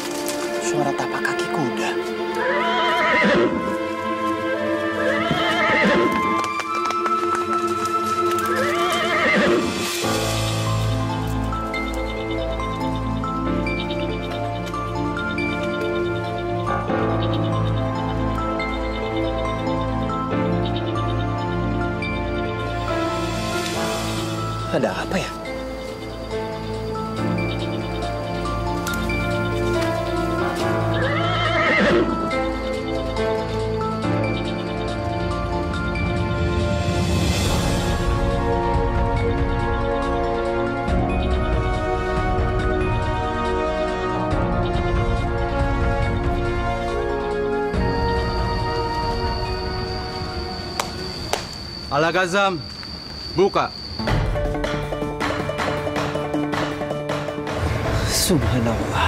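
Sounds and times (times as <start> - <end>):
background music: 0.0 - 52.6, 53.2 - 59.0
horse whinnying: 2.4 - 3.7, 4.8 - 6.5, 8.4 - 9.8, 30.7 - 32.4.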